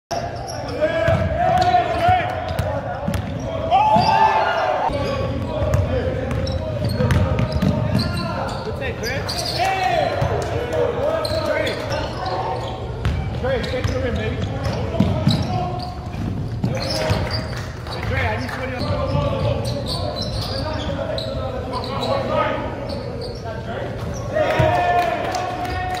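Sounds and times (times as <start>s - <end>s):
players and spectators calling out: 0.1s - 26.0s
basketball bouncing on hardwood: 5.7s - 7.9s.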